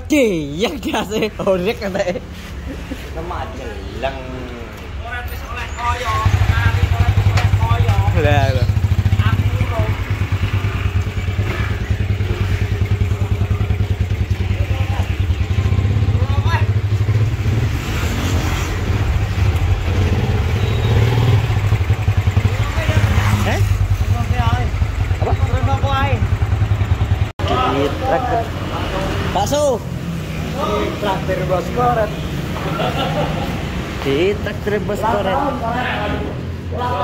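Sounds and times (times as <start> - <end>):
voices talking: 0.0 - 17.2, 19.1 - 37.0
motorcycle engine running: 6.2 - 17.9, 18.7 - 28.5.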